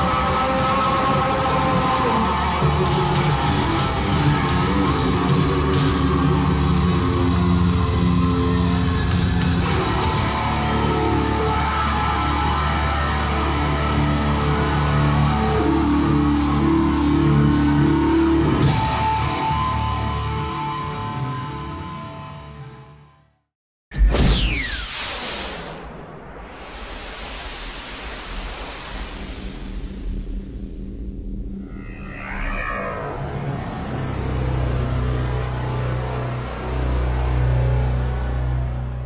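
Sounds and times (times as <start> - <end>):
rock band playing: 0.0 - 21.2.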